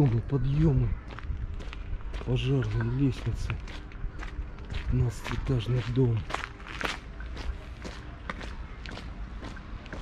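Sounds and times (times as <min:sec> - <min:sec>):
footsteps on damp asphalt: 0:00.0 - 0:10.0.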